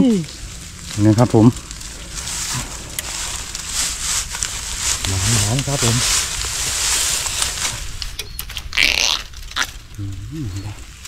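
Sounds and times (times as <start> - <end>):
hissing rustle: 0.0 - 11.0
twigs crackling and snapping: 0.0 - 11.0.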